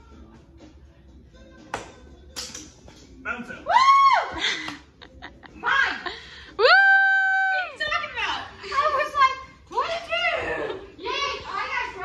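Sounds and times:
dart striking dartboard: 1.7 - 2.7
high-pitched whoop: 3.6 - 4.4, 6.6 - 7.7.

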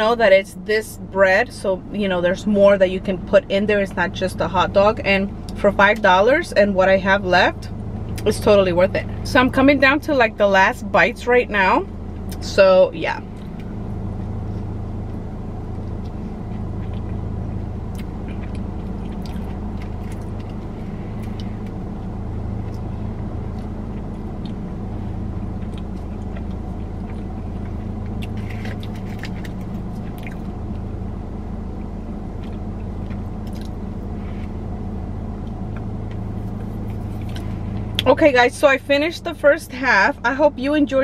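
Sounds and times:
car engine idling: 0.0 - 41.0
faint chewing: 14.4 - 24.7, 25.4 - 30.8, 31.8 - 34.6, 35.4 - 38.1.

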